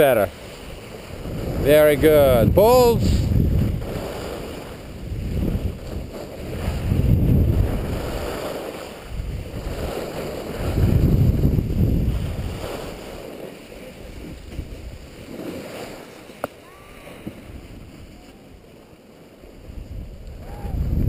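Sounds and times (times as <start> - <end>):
wind buffeting microphone: 0.0 - 13.4, 14.0 - 15.4, 17.1 - 18.7, 19.6 - 21.0
skis hissing over snow: 0.0 - 20.8.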